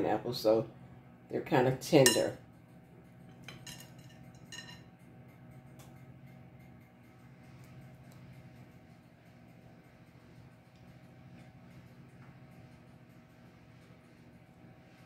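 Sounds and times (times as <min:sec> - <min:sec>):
steady low hum: 0:00.0 - 0:15.0
light clinks and taps: 0:03.3 - 0:04.9.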